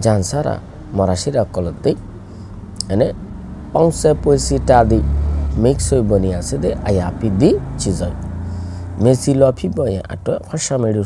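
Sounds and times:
low steady rumble: 0:00.0 - 0:11.0
man lecturing: 0:02.8 - 0:03.2, 0:03.8 - 0:08.2, 0:09.0 - 0:11.0.

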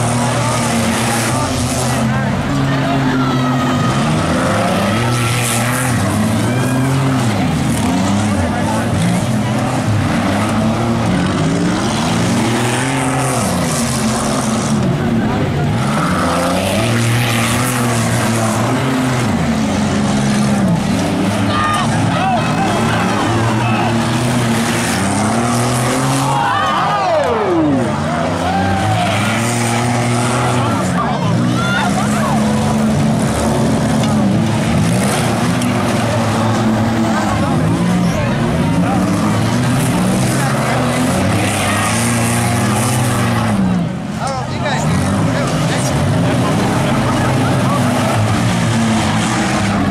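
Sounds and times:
race car engines running hard: 0:00.0 - 0:49.9.

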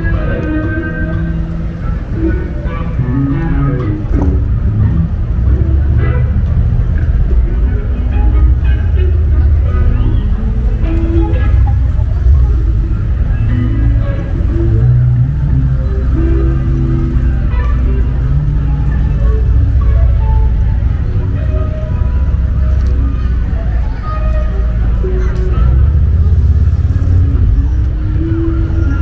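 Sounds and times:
low rumble of traffic: 0:00.0 - 0:29.0
music playing: 0:00.0 - 0:29.0
passers-by talking: 0:00.0 - 0:29.0.

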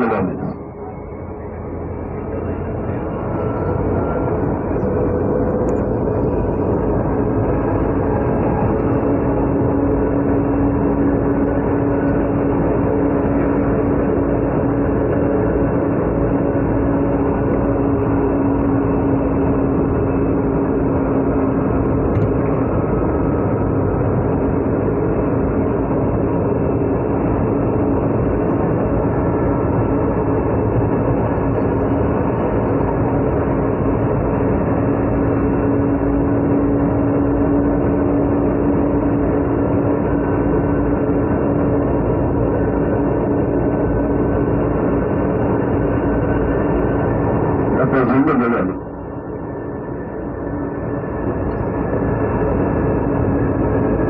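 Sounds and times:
steady hum: 0:00.0 - 0:54.0
train rumble and rail noise: 0:00.0 - 0:54.0.

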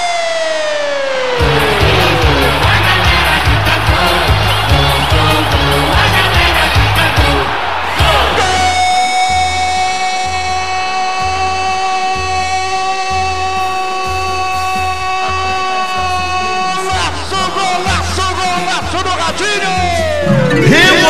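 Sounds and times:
jingle music with bass beat: 0:01.3 - 0:09.5, 0:19.7 - 0:21.0.

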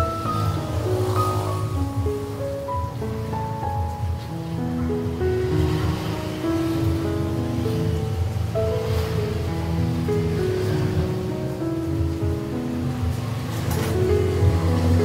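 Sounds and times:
slow melodic background music: 0:00.0 - 0:15.0
food deep-frying in hot oil: 0:03.0 - 0:11.0.

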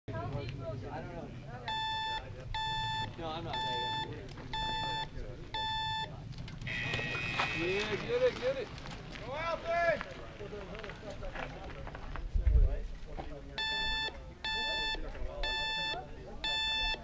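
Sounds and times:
countdown timer short beeps: 0:01.7 - 0:06.1, 0:13.6 - 0:17.0
long high-pitched beep: 0:01.7 - 0:06.1, 0:13.6 - 0:17.0.

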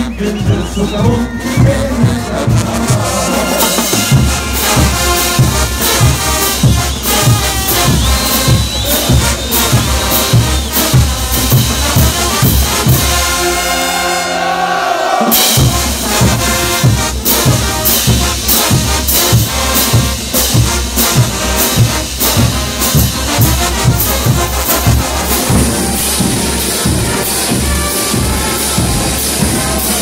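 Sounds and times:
trumpets and trombones: 0:00.0 - 0:30.0
bass drum beating: 0:00.5 - 0:13.5, 0:15.4 - 0:30.0.

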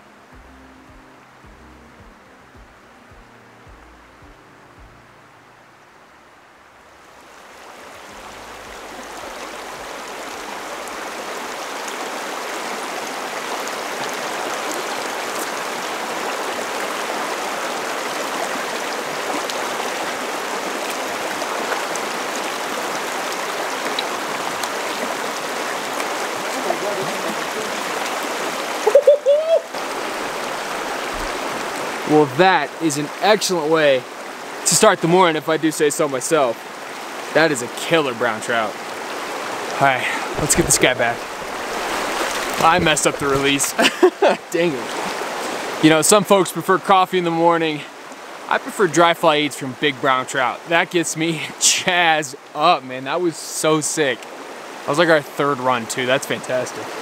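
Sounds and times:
soft background music: 0:00.0 - 0:06.3
river rushing over rocks: 0:05.6 - 0:29.0, 0:29.6 - 0:34.8, 0:36.2 - 0:46.1
short voice-like cry: 0:28.8 - 0:29.8.

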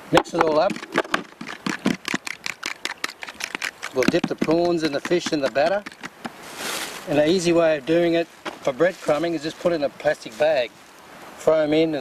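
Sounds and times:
fork whisking in a bowl: 0:00.6 - 0:06.2.

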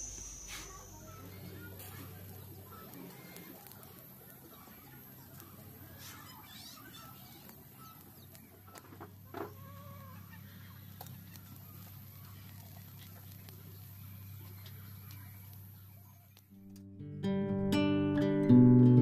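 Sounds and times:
low steady hum: 0:00.0 - 0:06.4
chickens clucking: 0:00.0 - 0:15.8.

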